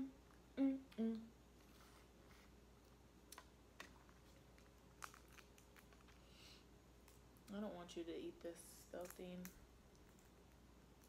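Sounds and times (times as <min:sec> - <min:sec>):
room fan humming: 0:00.0 - 0:11.0.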